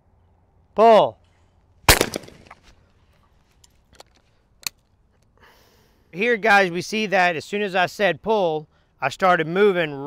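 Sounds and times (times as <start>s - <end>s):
shotgun shot: 1.9s - 2.6s.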